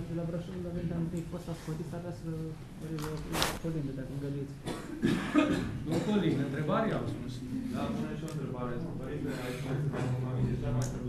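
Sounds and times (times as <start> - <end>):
person coughing: 4.6 - 6.4.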